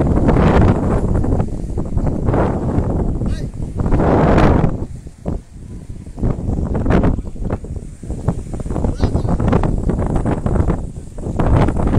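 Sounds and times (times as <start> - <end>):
wind buffeting microphone: 0.0 - 11.9.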